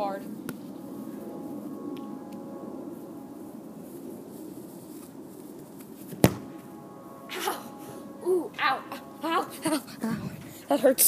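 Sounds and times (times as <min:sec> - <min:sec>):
faint background hum: 0:00.0 - 0:11.0
foot kicking soccer ball: 0:06.1 - 0:06.6.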